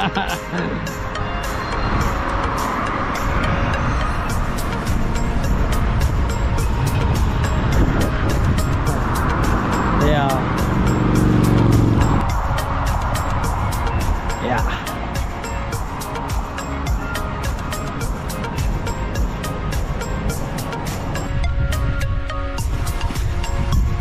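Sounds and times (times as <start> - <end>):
music with a steady beat: 0.0 - 24.0
road traffic: 0.0 - 24.0
vehicle engine drone: 0.0 - 24.0
wind on microphone: 1.3 - 14.4, 19.8 - 24.0.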